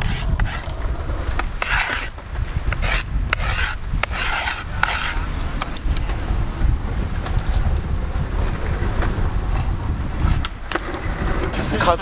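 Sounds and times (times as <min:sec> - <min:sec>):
hands scraping griptape: 0:00.0 - 0:06.0
wind buffeting microphone: 0:00.0 - 0:12.0.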